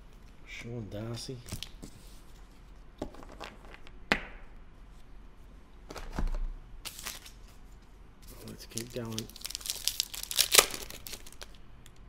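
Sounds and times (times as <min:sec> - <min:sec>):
foil pack rustling: 0:08.3 - 0:11.6.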